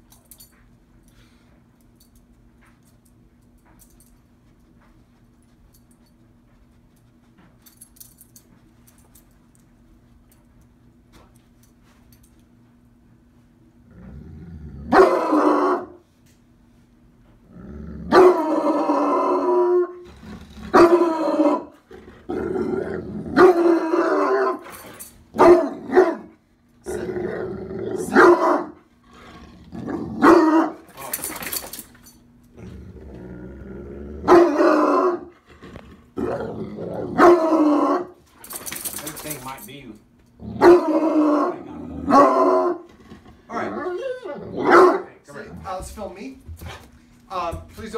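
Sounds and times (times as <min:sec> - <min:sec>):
dog barking deeply: 0:14.9 - 0:16.0, 0:18.1 - 0:19.6, 0:20.7 - 0:21.7, 0:23.3 - 0:24.6, 0:25.4 - 0:26.3, 0:28.0 - 0:28.8, 0:29.9 - 0:30.8, 0:34.2 - 0:35.3, 0:36.2 - 0:38.1, 0:40.5 - 0:42.8, 0:43.5 - 0:45.2.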